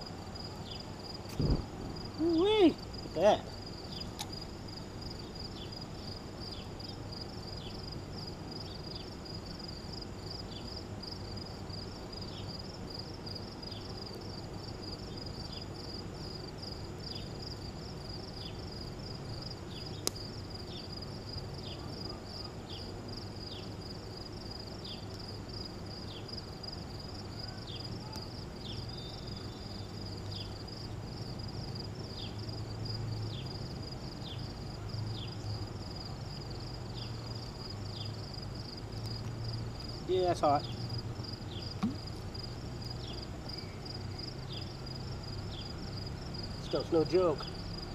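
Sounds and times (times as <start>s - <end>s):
crickets chirping: 0.0s - 47.9s.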